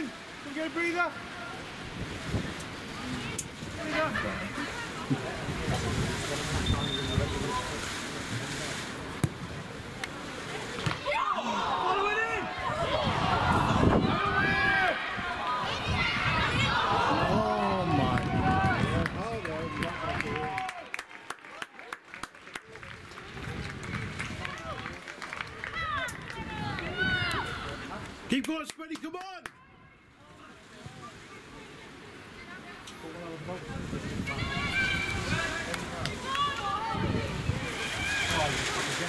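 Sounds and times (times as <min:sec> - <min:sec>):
outdoor background noise: 0:00.0 - 0:39.0
people shouting: 0:11.0 - 0:19.0.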